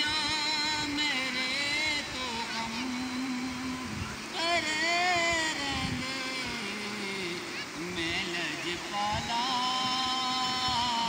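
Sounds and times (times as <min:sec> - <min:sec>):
man singing unaccompanied: 0:00.0 - 0:11.0
river rushing: 0:00.0 - 0:11.0.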